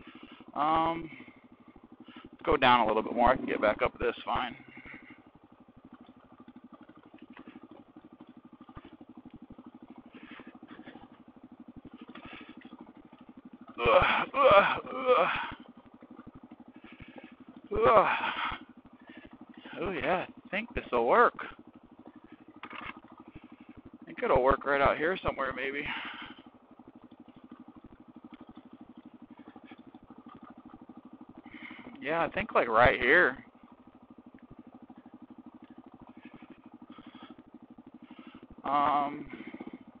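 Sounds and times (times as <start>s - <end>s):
motorcycle engine running: 0.0s - 40.0s
man talking: 0.6s - 1.2s, 2.4s - 4.6s, 17.7s - 18.3s, 19.7s - 21.5s, 24.1s - 26.0s, 32.0s - 33.4s, 38.7s - 39.3s.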